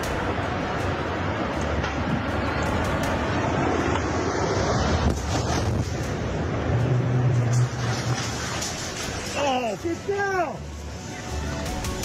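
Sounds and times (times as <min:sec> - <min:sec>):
wind buffeting microphone: 0:00.0 - 0:09.2
smokestack collapsing rumble: 0:00.0 - 0:10.9.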